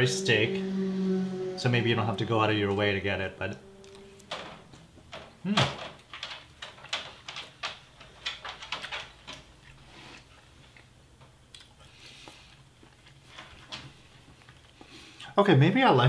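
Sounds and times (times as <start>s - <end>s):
low steady hum: 0.0s - 5.6s.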